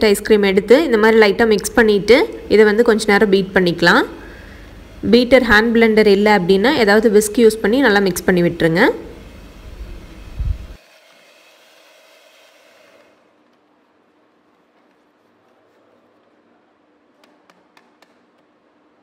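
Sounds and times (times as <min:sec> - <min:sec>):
electric hand mixer running: 0:09.1 - 0:13.2.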